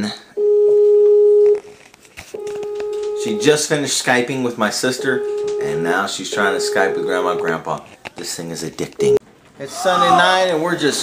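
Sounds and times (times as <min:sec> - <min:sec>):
outgoing call ringing tone: 0:02.4 - 0:03.7, 0:04.9 - 0:07.6.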